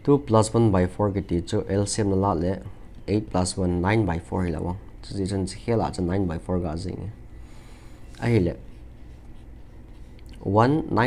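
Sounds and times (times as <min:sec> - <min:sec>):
pen nib scratching on paper: 0:08.6 - 0:10.2.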